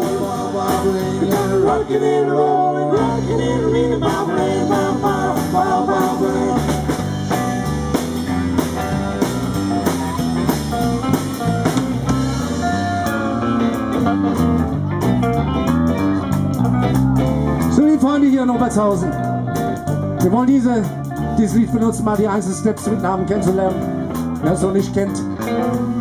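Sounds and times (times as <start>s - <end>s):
person singing: 0.0s - 7.5s
drum kit: 0.0s - 26.0s
electric bass: 0.0s - 26.0s
electric guitars: 0.0s - 26.0s.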